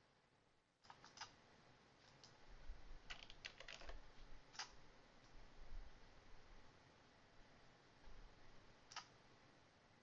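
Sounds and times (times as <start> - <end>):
computer keyboard typing: 0.8 - 1.4, 3.1 - 4.0.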